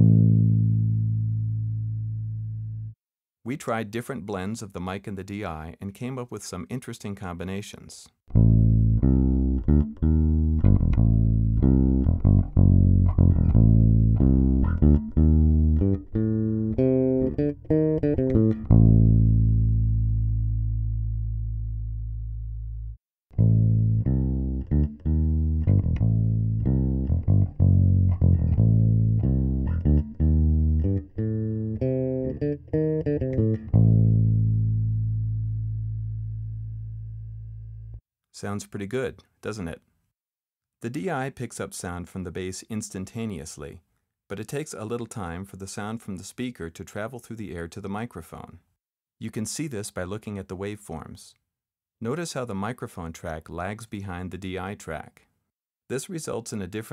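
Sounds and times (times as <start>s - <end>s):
electric bass guitar plucked notes: 0.0s - 3.0s, 8.3s - 38.0s.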